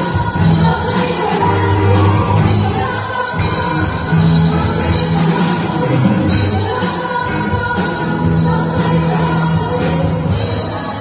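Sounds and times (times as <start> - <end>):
live band playing: 0.0 - 11.0
people singing: 0.0 - 11.0.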